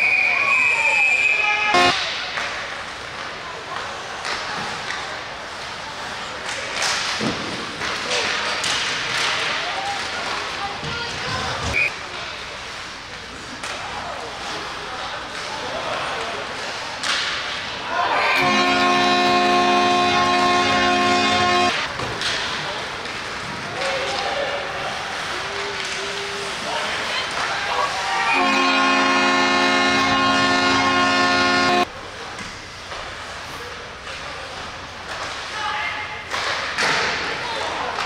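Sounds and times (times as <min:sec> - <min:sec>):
referee's whistle long blast: 0:00.0 - 0:02.0, 0:18.3 - 0:21.7, 0:28.3 - 0:31.8
crowd noise: 0:00.0 - 0:38.0
low arena background: 0:00.0 - 0:38.0
arena goal horn: 0:01.4 - 0:02.0, 0:18.2 - 0:21.9, 0:28.2 - 0:31.9.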